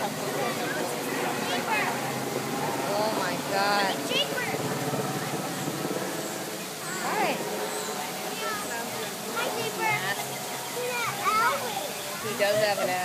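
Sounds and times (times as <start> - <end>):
running water rushing: 0.0 - 13.0.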